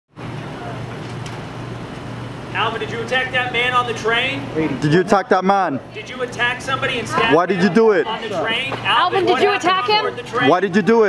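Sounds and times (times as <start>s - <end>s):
traffic noise: 0.1s - 11.0s
constant low hum: 0.2s - 11.0s.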